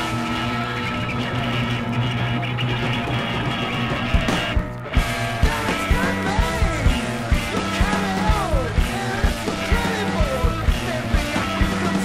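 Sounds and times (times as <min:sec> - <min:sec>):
distorted electric guitar chord: 0:00.0 - 0:12.0.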